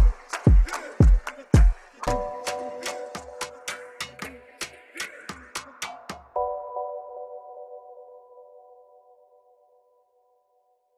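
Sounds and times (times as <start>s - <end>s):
electronic music beat: 0.0s - 6.6s.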